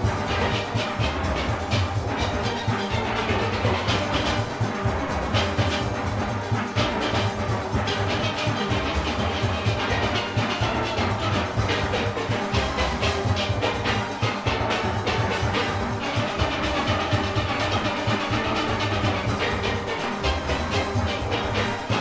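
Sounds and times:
congas: 0.0 - 22.0
drum kit: 0.0 - 22.0
steelpans playing fast runs: 0.0 - 22.0.

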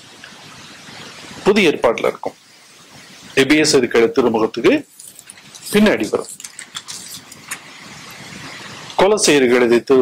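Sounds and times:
steady background hiss: 0.0 - 10.0
man speaking: 1.5 - 2.4, 5.7 - 6.3, 9.0 - 10.0.

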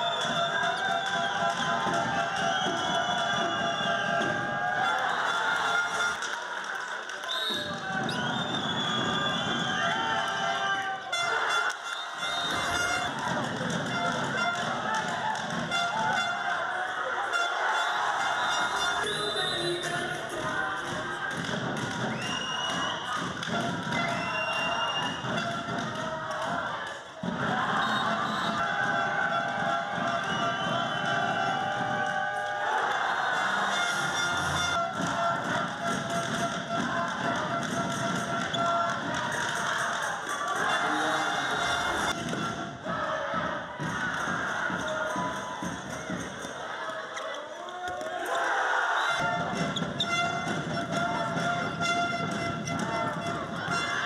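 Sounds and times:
crowd voices: 0.0 - 54.0
arena music: 10.6 - 24.2, 31.5 - 45.6.

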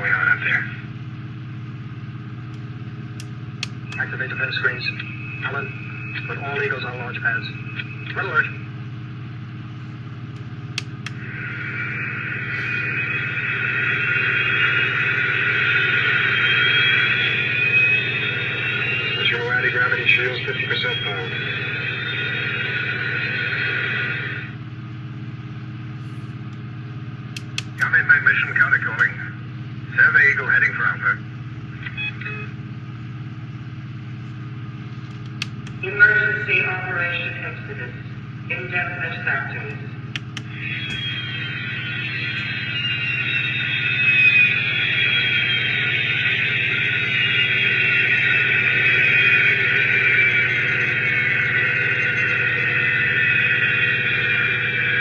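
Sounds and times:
steady low hum: 0.0 - 55.0
spaceship engine sound effect: 2.8 - 24.8, 35.8 - 55.0.

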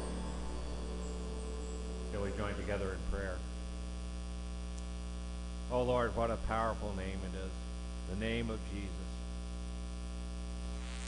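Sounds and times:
music: 0.0 - 3.4
electrical mains hum: 0.0 - 11.0
person speaking: 2.0 - 3.6.

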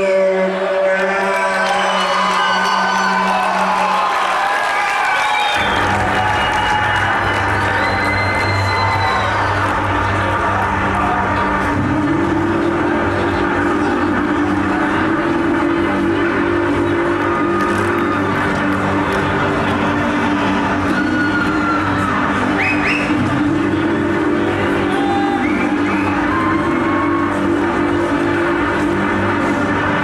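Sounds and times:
crowd cheering and whooping: 0.4 - 30.0
guitar and bass drone: 5.6 - 30.0.

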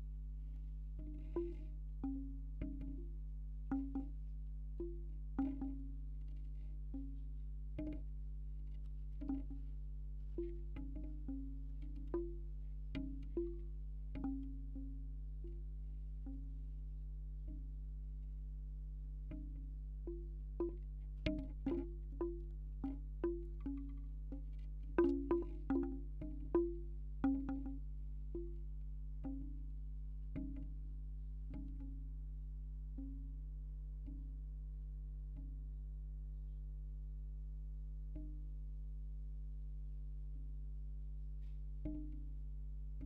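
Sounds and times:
bamboo wind chime knocking: 1.0 - 4.2, 4.8 - 8.2, 8.8 - 16.6, 19.3 - 29.7, 30.3 - 30.8, 31.5 - 32.2, 41.8 - 42.4.

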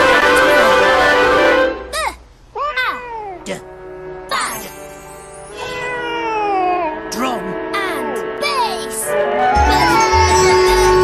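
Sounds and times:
music: 0.0 - 1.9, 3.4 - 11.0
cartoon voices gliding in pitch: 6.5 - 11.0.

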